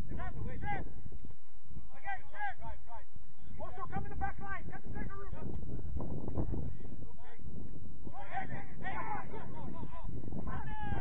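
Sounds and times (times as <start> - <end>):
players shouting: 8.1 - 11.0.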